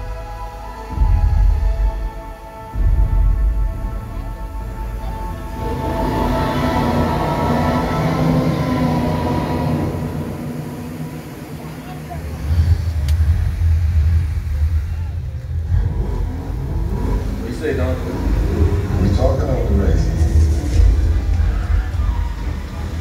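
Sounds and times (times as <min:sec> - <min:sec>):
deep rumble: 0:00.0 - 0:23.0
held musical tones over loudspeakers: 0:00.0 - 0:23.0.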